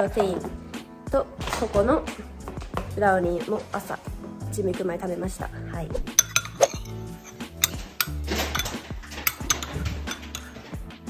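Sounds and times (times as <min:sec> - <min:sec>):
background music: 0:00.0 - 0:11.0
metal spoon clinking on ceramic: 0:06.1 - 0:10.6.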